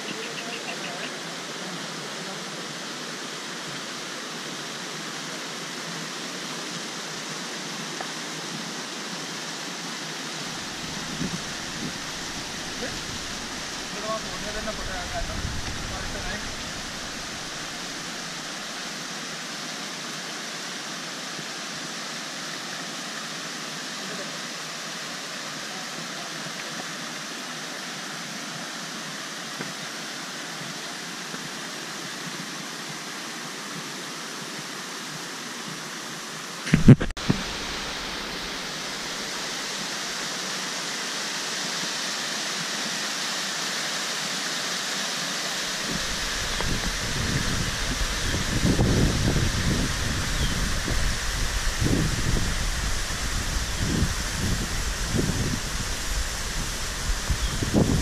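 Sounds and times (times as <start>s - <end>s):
stream rushing over rocks: 0.0s - 58.0s.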